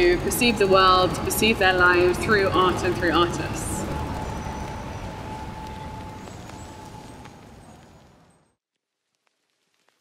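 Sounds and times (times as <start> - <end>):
low street rumble: 0.0 - 8.6.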